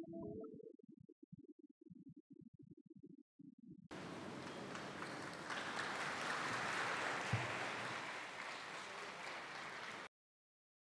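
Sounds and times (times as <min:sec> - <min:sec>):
large audience applauding: 0:03.9 - 0:10.1.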